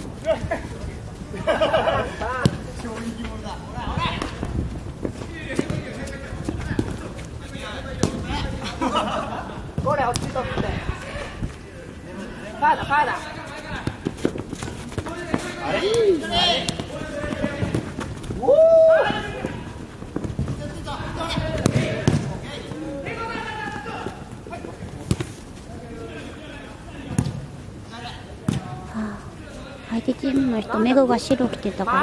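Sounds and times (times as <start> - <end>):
running footsteps on artificial turf: 0.0 - 27.6
sharp ball kick: 21.6 - 22.4, 28.5 - 28.7.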